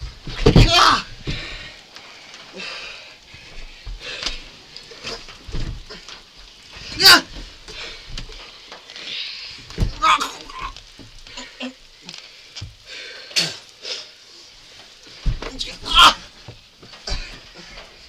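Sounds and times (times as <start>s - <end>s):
loud vocal outburst: 0.4s - 1.1s, 6.8s - 7.4s, 9.8s - 11.8s, 15.5s - 16.3s
people grunting: 0.4s - 1.4s, 6.9s - 7.9s, 9.8s - 11.8s, 15.4s - 16.3s, 17.0s - 17.9s.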